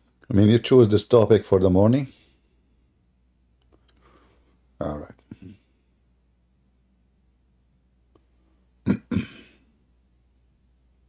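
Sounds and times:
man clearing throat: 0:08.8 - 0:09.7.

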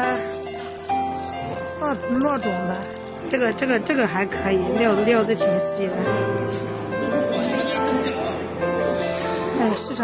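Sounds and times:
sustained background music: 0:00.0 - 0:10.0
voice: 0:01.8 - 0:06.0.

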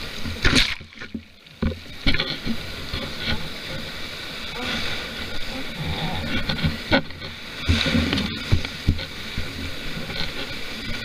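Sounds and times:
sea water rushing and splashing: 0:00.0 - 0:11.0
wind rumbling on microphone: 0:00.0 - 0:11.0.

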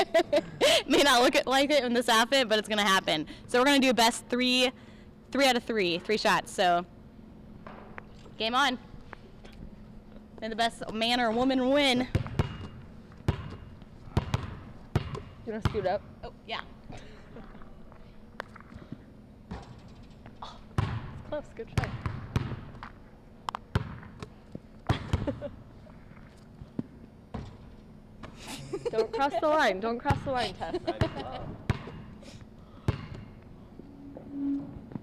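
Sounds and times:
basketball bouncing on gym floor: 0:10.8 - 0:16.0, 0:20.7 - 0:22.9, 0:23.7 - 0:25.5, 0:27.3 - 0:27.7, 0:30.0 - 0:30.4, 0:31.0 - 0:32.1, 0:32.8 - 0:33.4.

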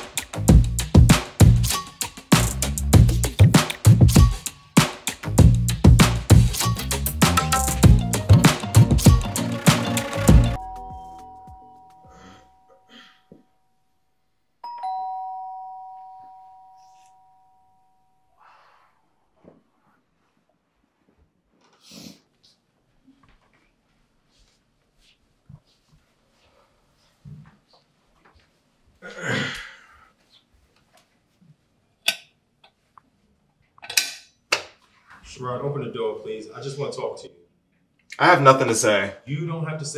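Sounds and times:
two-tone doorbell chime: 0:10.6 - 0:13.7, 0:14.6 - 0:18.3.

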